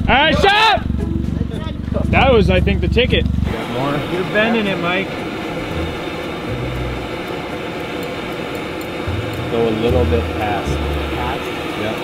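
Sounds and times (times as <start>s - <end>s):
propane torch hissing: 3.4s - 12.0s.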